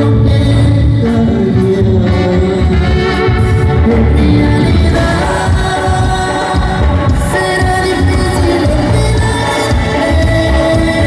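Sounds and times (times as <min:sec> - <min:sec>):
live band playing: 0:00.0 - 0:11.0
man singing into a microphone: 0:00.0 - 0:11.0.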